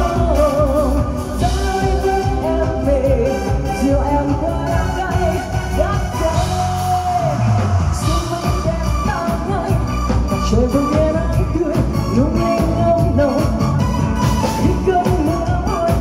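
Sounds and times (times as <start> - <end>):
drum kit: 0.0 - 16.0
electric guitar: 0.0 - 16.0
keyboard: 0.0 - 16.0
woman singing into a microphone: 0.0 - 16.0.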